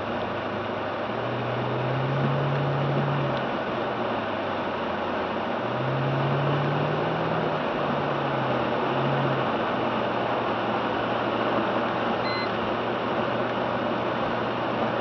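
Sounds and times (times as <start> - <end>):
low engine hum: 0.0 - 15.0
tyres on wet road: 0.0 - 15.0
short high beep: 12.2 - 12.6.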